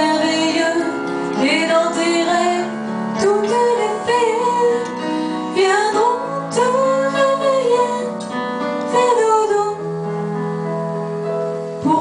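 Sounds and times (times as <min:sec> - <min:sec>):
woman singing a lullaby: 0:00.0 - 0:08.3, 0:08.9 - 0:10.0
keyboard chords: 0:00.0 - 0:12.0.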